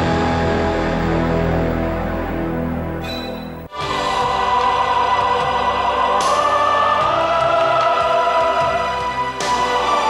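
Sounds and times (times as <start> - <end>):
orchestral music: 0.0 - 10.0.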